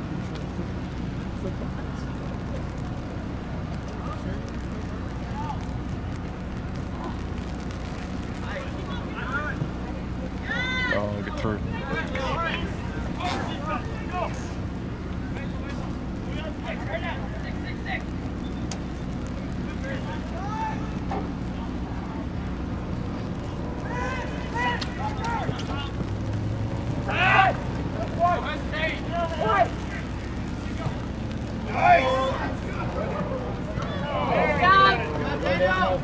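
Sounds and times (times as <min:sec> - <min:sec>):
low background rumble: 0:00.0 - 0:36.0
distant shouts and calls: 0:08.4 - 0:22.4, 0:23.4 - 0:26.1, 0:27.0 - 0:36.0.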